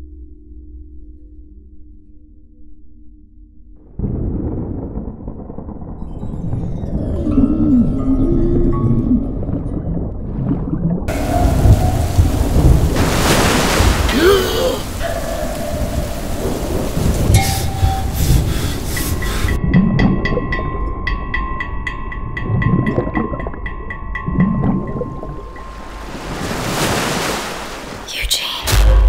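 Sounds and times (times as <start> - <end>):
deep rumbling: 3.4 - 26.8
surf churning and breaking: 10.1 - 19.8, 24.4 - 28.8
wind: 11.1 - 28.7
steady tone with rapid ticking: 17.3 - 26.0.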